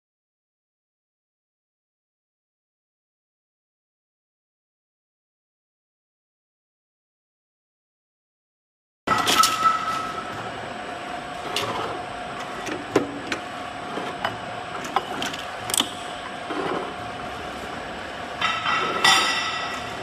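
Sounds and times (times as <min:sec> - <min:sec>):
metallic ringing: 0:09.1 - 0:10.4.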